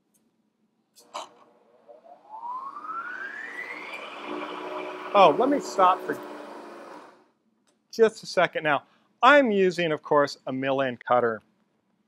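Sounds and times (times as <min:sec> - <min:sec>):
milling machine motor whining: 0:01.5 - 0:07.2.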